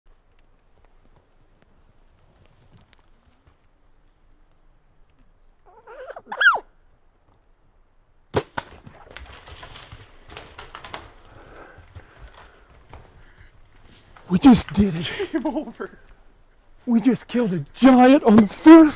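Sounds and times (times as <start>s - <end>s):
rustling and crackling in brush: 0.1s - 5.6s, 8.6s - 18.9s
bow shot snap: 8.3s - 9.1s.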